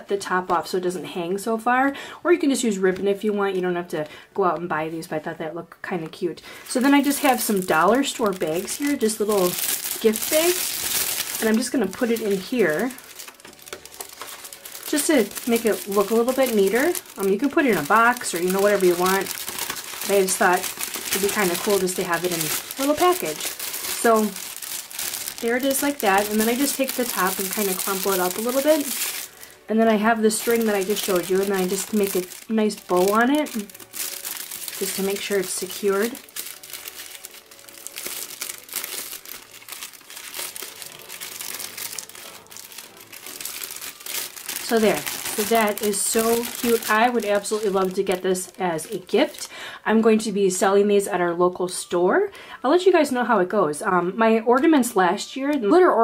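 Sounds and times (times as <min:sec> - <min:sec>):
plastic bag and cardstock crinkling: 0:06.4 - 0:49.5.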